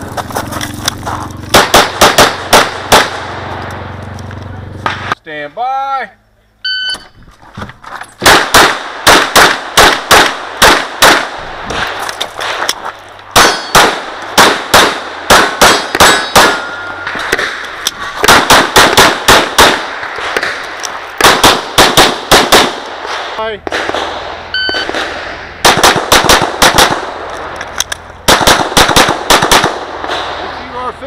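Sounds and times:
pistol shots in bursts: 1.4s - 3.6s, 8.2s - 12.7s, 13.3s - 30.9s.

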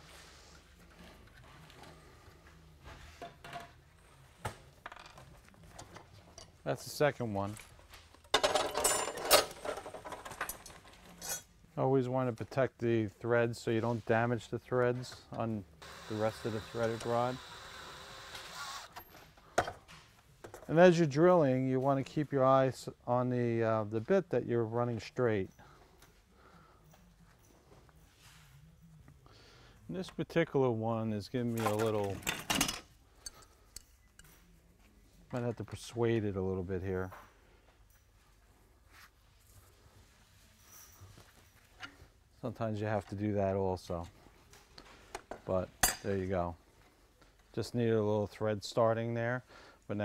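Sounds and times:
man talking: 6.6s - 7.6s, 11.8s - 17.5s, 20.7s - 25.6s, 29.9s - 32.3s, 35.3s - 37.2s, 42.4s - 44.1s, 45.4s - 46.6s, 47.5s - 50.0s
metal rods clattering: 8.3s - 11.4s.

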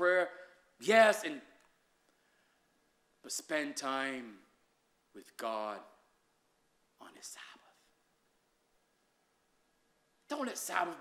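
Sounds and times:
man whispering into microphone: 7.0s - 8.0s.

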